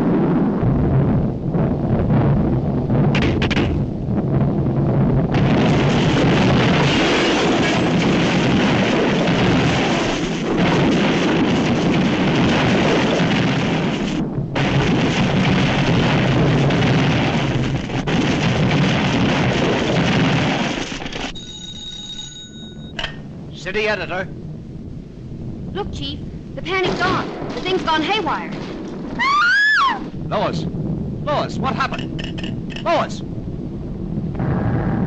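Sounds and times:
cartoon explosion rumble and crashes: 0:00.0 - 0:21.4, 0:25.5 - 0:35.0
telephone bell ringing: 0:21.4 - 0:23.0.

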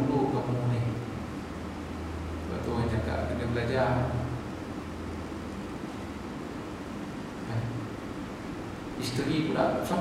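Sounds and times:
man talking: 0:00.0 - 0:01.0, 0:02.5 - 0:04.4, 0:09.0 - 0:10.0
room hiss with low hum: 0:00.0 - 0:10.0.

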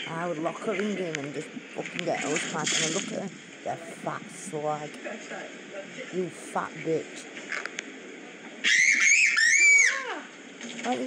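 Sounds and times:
person shrieking: 0:08.7 - 0:10.3.

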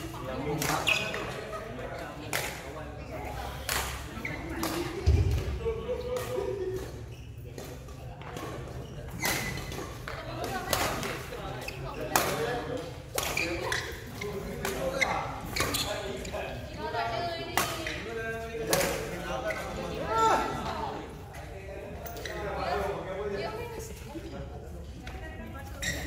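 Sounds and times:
voices in a large hall: 0:00.0 - 0:26.0
rackets hitting shuttlecock: 0:03.6 - 0:11.3.

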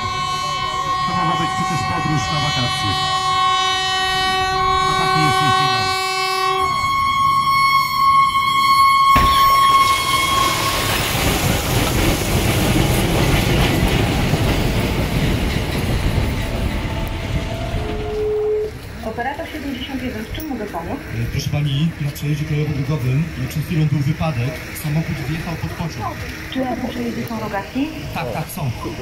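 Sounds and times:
locomotive horn blast: 0:00.0 - 0:11.4, 0:16.4 - 0:19.8
train colliding with van: 0:09.1 - 0:18.2.

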